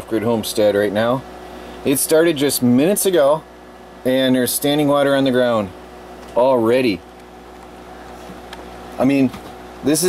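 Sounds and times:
generator humming: 0:00.0 - 0:10.0.

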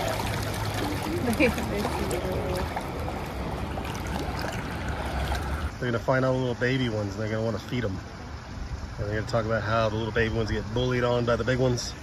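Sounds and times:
running and splashing water: 0:00.0 - 0:05.7.

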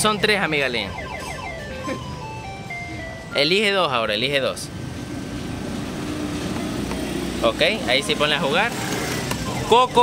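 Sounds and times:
slot machine beeping tune: 0:00.0 - 0:03.6.

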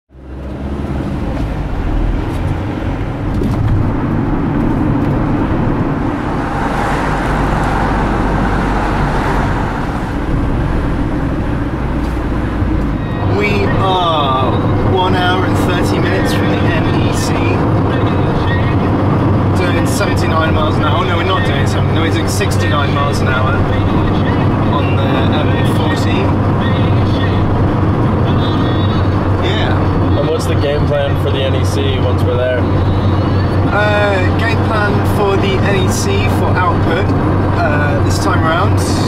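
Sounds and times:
engine and road rumble: 0:00.1 - 0:39.0
voices: 0:12.8 - 0:39.0.

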